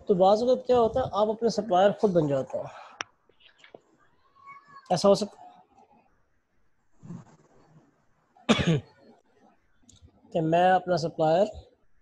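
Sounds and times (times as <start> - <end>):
person coughing: 8.5 - 8.9.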